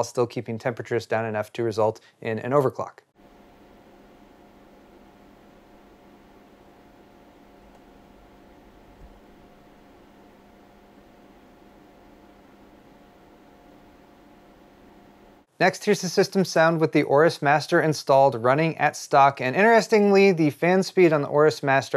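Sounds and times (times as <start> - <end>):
computer fan hiss and hum: 3.2 - 21.9.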